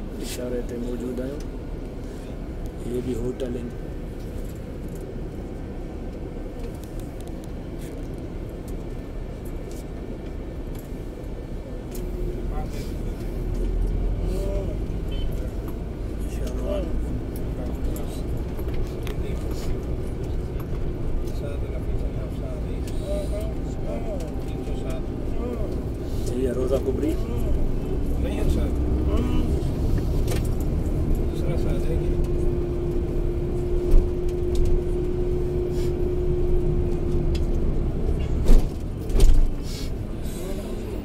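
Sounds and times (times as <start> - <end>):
bus engine and road noise: 0.0 - 41.0.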